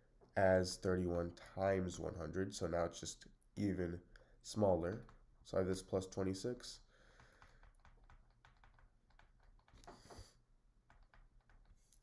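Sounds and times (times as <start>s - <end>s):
stylus tapping on drawing tablet: 7.2s - 11.9s.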